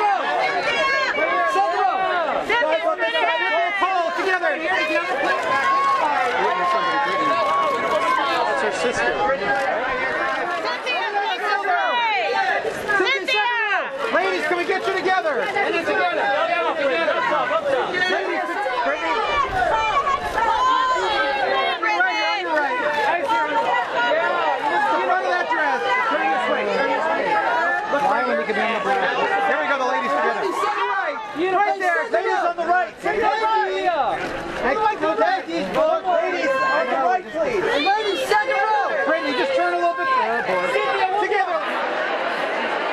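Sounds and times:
crowd of overlapping shouts: 0.0 - 42.9
voices talking and calling out: 0.0 - 42.9.

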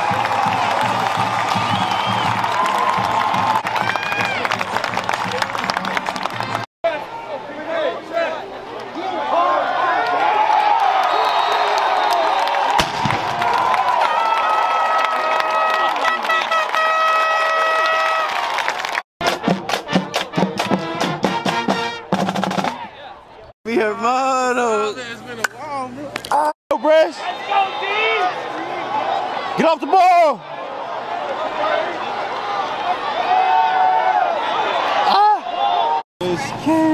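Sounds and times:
stadium crowd cheering: 0.0 - 23.3, 26.7 - 36.0
cannon boom: 12.8 - 13.4
brass holding long notes: 15.9 - 18.3
steady drum beat: 19.2 - 22.8.

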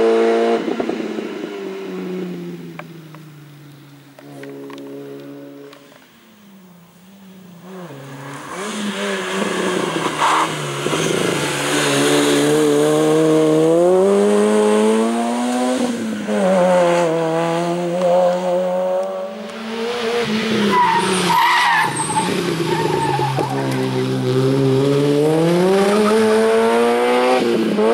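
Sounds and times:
race car engine revving: 7.6 - 27.9.

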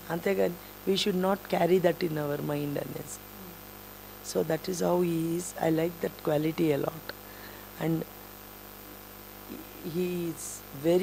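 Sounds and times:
woman's voice: 0.0 - 3.6, 4.2 - 7.2, 7.8 - 8.1, 9.5 - 11.0
steady electrical hum: 0.0 - 11.0.

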